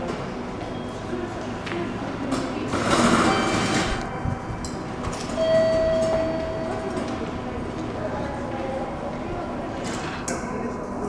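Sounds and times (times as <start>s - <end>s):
railway station concourse noise: 0.0s - 11.0s
steady high tone: 3.3s - 9.2s.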